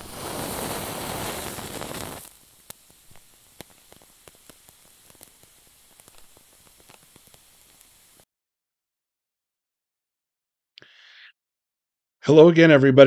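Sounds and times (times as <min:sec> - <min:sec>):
lighter flame hissing: 0:00.0 - 0:08.2
wick crackling faintly: 0:00.0 - 0:08.2.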